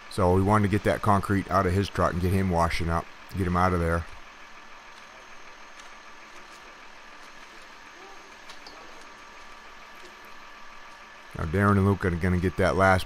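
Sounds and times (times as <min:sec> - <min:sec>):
truck engine idling: 0:00.0 - 0:13.0.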